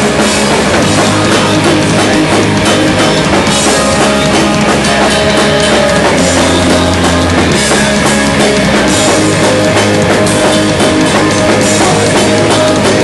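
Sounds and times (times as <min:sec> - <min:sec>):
bass guitar: 0:00.0 - 0:13.0
drum kit: 0:00.0 - 0:13.0
electric guitars: 0:00.0 - 0:13.0.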